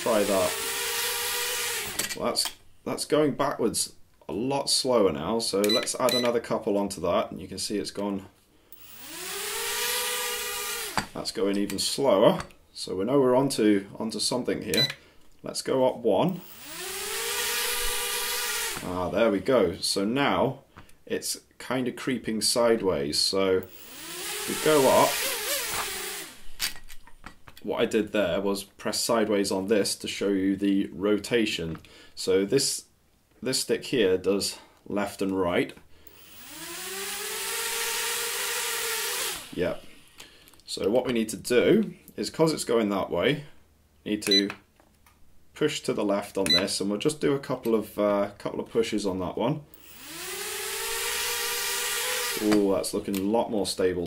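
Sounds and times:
drone propellers whirring: 8.8s - 11.0s, 16.5s - 18.8s, 23.7s - 26.4s.

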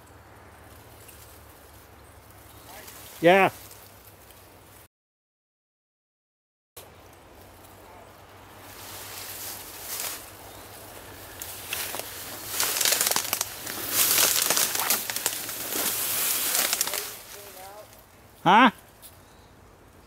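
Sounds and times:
twigs crackling: 0.2s - 4.9s, 6.8s - 19.3s
grass and brush swishing: 0.7s - 4.9s, 6.8s - 18.1s.

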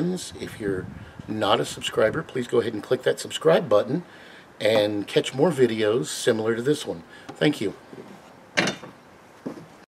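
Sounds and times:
scuffing handling noises: 9.4s - 9.8s.

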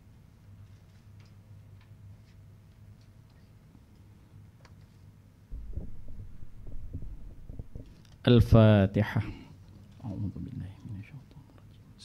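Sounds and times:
microphone handling rumble and thumps: 5.5s - 8.7s.

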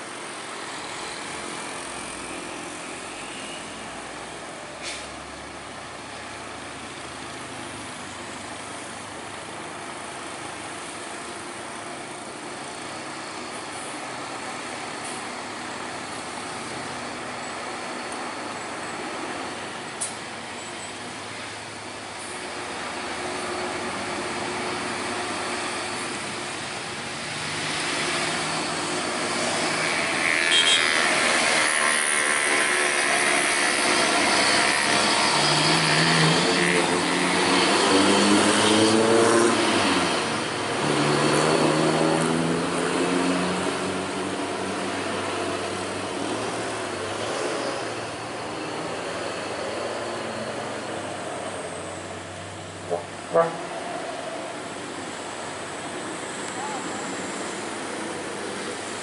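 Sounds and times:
road traffic passing: 0.0s - 59.0s
truck diesel engine: 0.0s - 59.0s.

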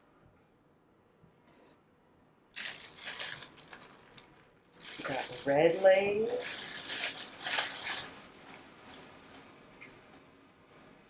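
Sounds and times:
plastic bag crinkling: 2.5s - 9.9s.

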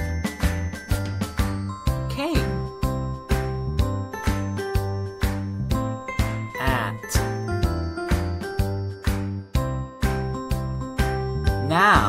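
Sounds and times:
bright children's music: 0.0s - 12.0s.

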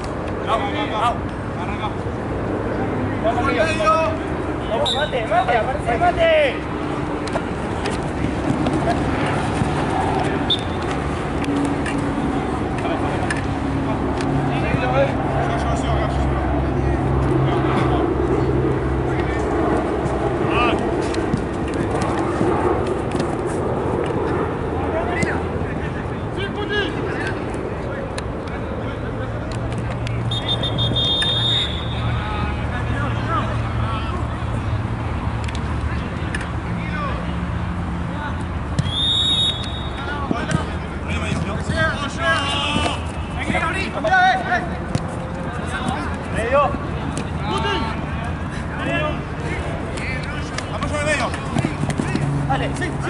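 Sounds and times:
low hum of traffic: 0.0s - 53.0s
short high whistle blast: 30.3s - 31.9s, 38.9s - 40.0s
players shouting: 38.3s - 53.0s.

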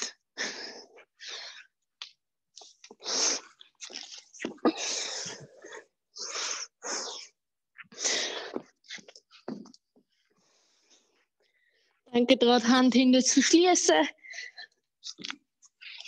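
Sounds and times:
person breathing hard: 8.0s - 8.7s.

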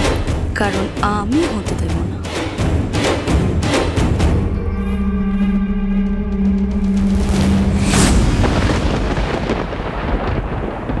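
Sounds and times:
thunder rumble with crackle: 7.0s - 11.0s.

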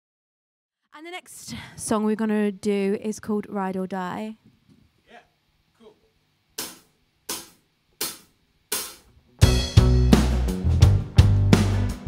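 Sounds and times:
drumstick count-in taps: 6.6s - 9.0s
rock band playing: 8.8s - 12.0s.

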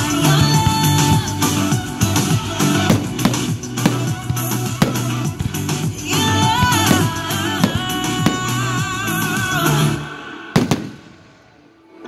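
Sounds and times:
background music: 0.0s - 12.0s
firework shells bursting: 0.7s - 9.2s.

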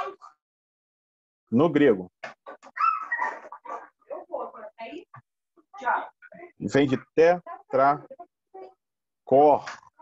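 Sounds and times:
high-pitched animal vocal sounds: 2.6s - 3.7s.

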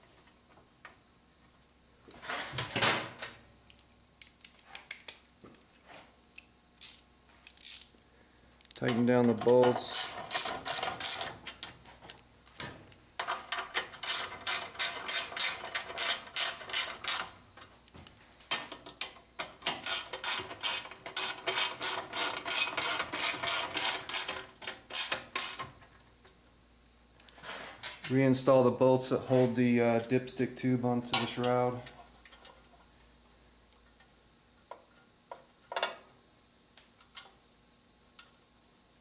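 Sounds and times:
socket ratchet clicking: 18.9s - 25.6s.

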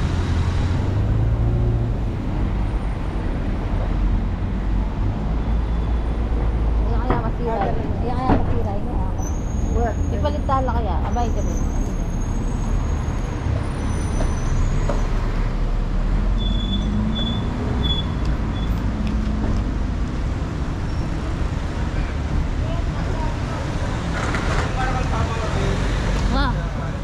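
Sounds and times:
city traffic rumble: 0.0s - 27.0s
voices of passers-by: 0.0s - 27.0s.

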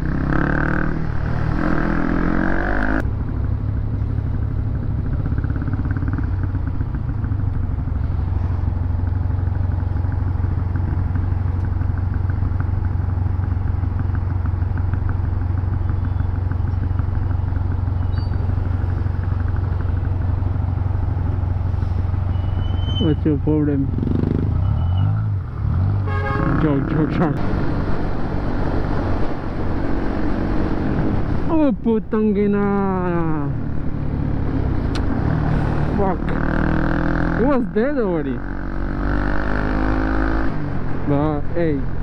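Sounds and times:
motorcycle engine drone: 0.0s - 42.0s
wind and road noise: 0.0s - 42.0s.

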